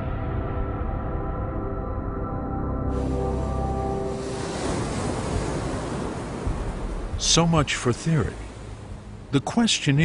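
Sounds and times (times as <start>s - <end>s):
sustained music chord: 0.3s - 4.3s
ocean waves breaking: 2.9s - 10.0s.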